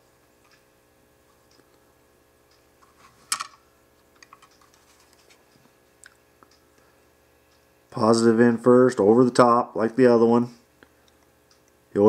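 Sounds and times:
light clicks and ticks: 10.8 - 11.8.

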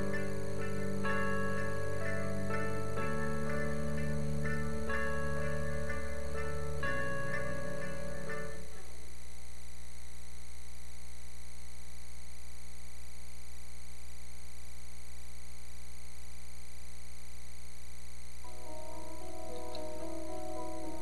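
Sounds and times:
soft sustained music: 0.0 - 8.8, 18.4 - 21.0
electrical mains hum: 0.0 - 21.0
faint hiss: 0.0 - 21.0.

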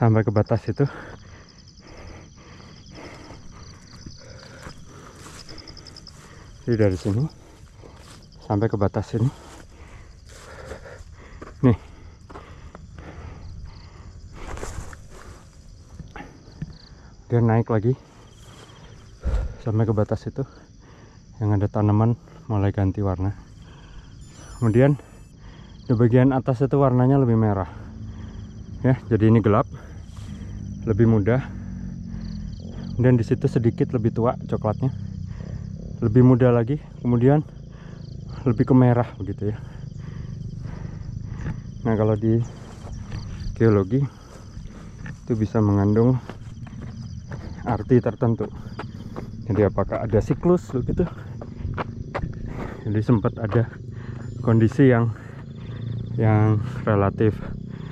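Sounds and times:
footsteps on dry dirt: 1.9 - 16.9, 40.7 - 56.0
person speaking: 4.2 - 9.9, 24.3 - 25.2, 47.3 - 48.8, 49.4 - 51.4
low steady rumble: 27.6 - 56.6
wind rumble on microphone: 40.0 - 54.1.

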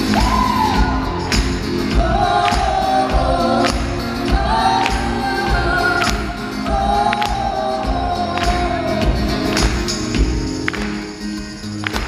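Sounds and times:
man and woman singing: 0.0 - 9.7
acoustic guitar: 0.0 - 12.0.

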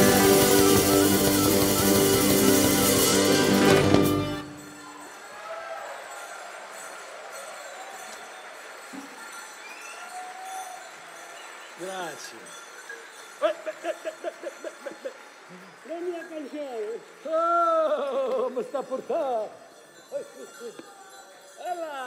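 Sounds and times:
jingling: 18.0 - 22.0.

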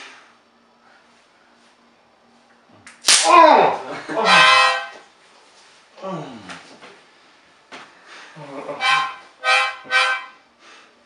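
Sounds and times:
taser snap: 2.8 - 3.4
man yelling: 3.1 - 4.3
harmonica chord: 4.0 - 5.0, 8.4 - 10.8.

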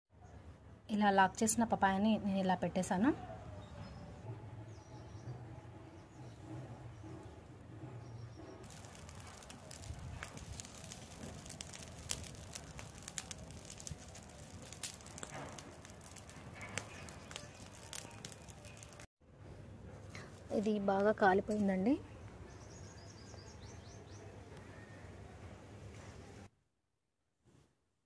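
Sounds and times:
dry leaves burning crackling: 8.6 - 19.1.

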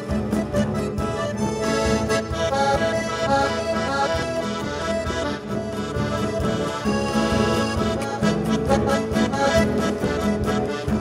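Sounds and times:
bass guitar accompaniment: 0.0 - 11.0
button accordion playing chords: 0.0 - 11.0
light percussion: 0.0 - 11.0.

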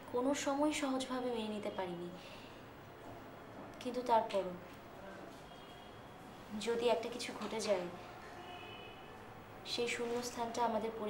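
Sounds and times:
faint room hiss: 0.0 - 11.0
woman talking: 0.1 - 2.2, 3.8 - 4.7, 6.5 - 8.0, 9.7 - 11.0.

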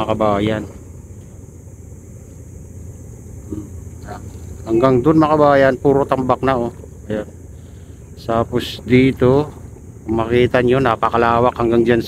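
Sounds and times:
distant traffic: 0.0 - 12.0
wind: 0.0 - 12.0.

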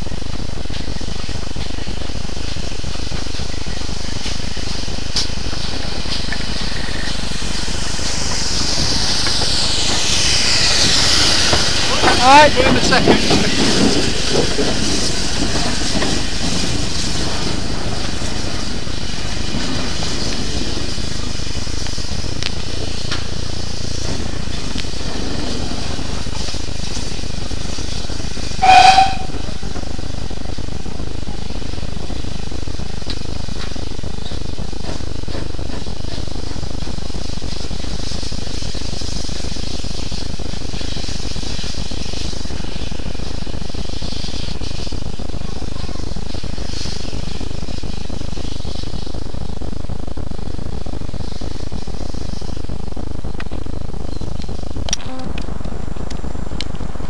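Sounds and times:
steam locomotive hiss: 0.0 - 57.0
steam locomotive whistle toot: 28.6 - 29.6.

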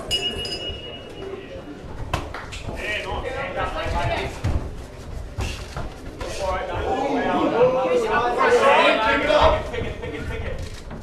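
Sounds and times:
ring bell striking: 0.0 - 1.4
crowd voices: 0.0 - 11.0.

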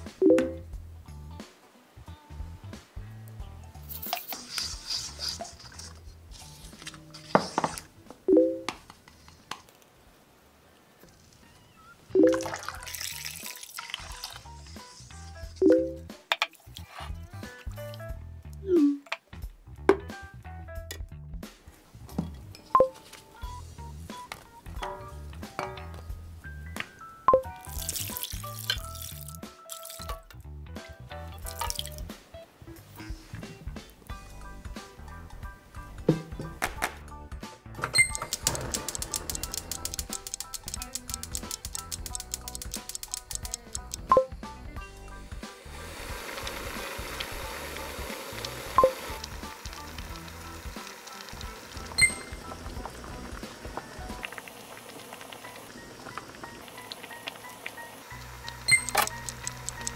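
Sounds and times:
background music with bass line: 0.0 - 4.1, 14.1 - 54.3
liquid pouring and splashing into pot: 12.2 - 14.5, 27.6 - 30.2, 31.4 - 32.0
pot bubbling at a boil: 45.3 - 59.9.

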